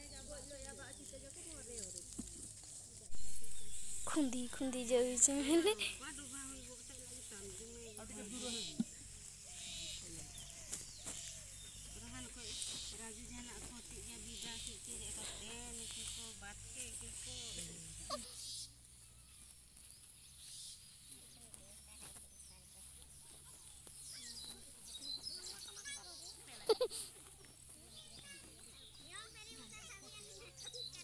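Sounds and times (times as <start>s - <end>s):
distant chatter of people: 0.0s - 31.0s
short hissy rustles: 0.6s - 21.1s.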